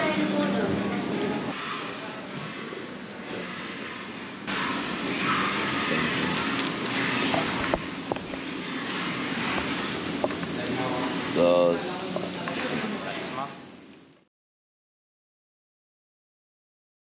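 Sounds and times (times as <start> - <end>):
indistinct voices: 4.5 - 7.8.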